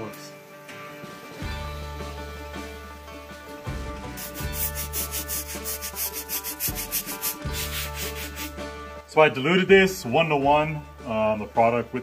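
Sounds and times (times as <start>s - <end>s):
scrubbing wooden post by hand: 4.2s - 8.6s.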